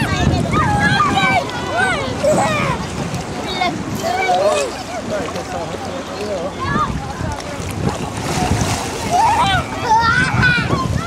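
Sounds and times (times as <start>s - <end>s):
water splashing and sloshing: 0.0s - 11.0s
wind buffeting microphone: 0.0s - 11.0s.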